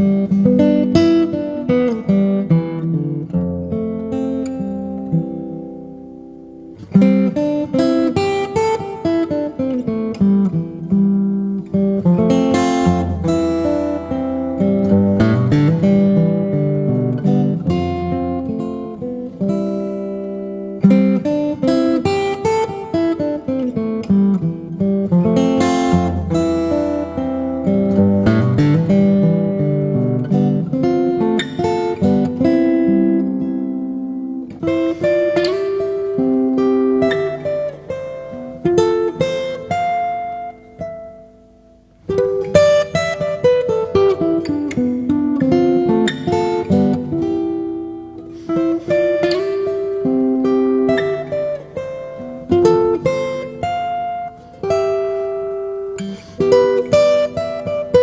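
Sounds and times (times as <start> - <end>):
acoustic guitar picking: 0.0 - 58.0.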